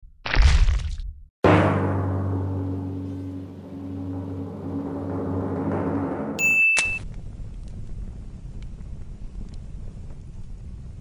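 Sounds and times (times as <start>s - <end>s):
deep sustained low chord: 1.5s - 6.4s
short high-pitched tone: 6.4s - 7.0s
sharp click: 6.7s - 7.0s.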